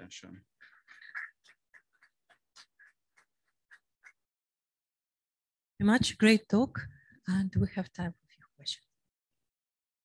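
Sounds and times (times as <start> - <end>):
faint sparse hand clapping: 0.6 - 4.2.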